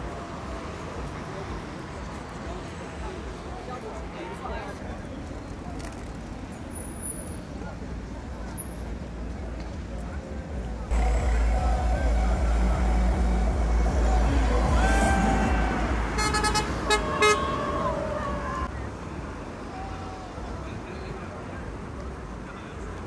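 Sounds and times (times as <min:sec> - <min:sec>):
passing cars: 0:00.0 - 0:23.0
crowd calling out: 0:10.9 - 0:18.7
car horn toots: 0:11.0 - 0:17.6.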